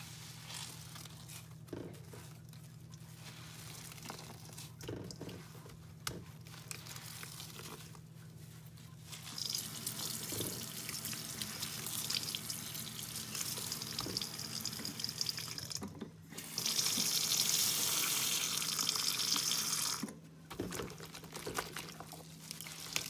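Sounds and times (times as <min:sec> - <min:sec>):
wet sponges squelching: 0:00.0 - 0:15.4, 0:20.5 - 0:23.0
tap water running into bowl: 0:09.4 - 0:15.9.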